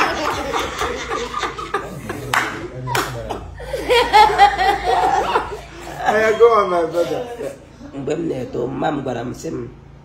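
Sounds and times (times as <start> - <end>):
group laughing: 0.0 - 8.0
hand claps: 2.3 - 3.4.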